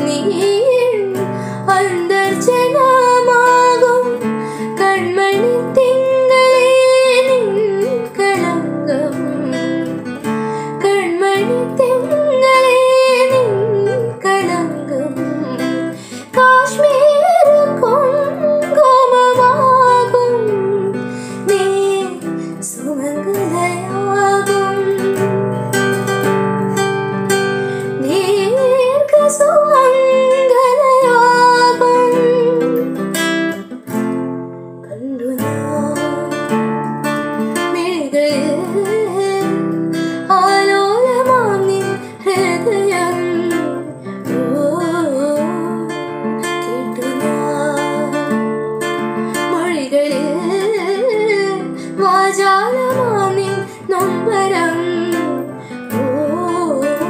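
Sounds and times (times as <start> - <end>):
woman singing: 0.0 - 33.9, 34.8 - 57.0
strummed acoustic guitar: 0.0 - 57.0.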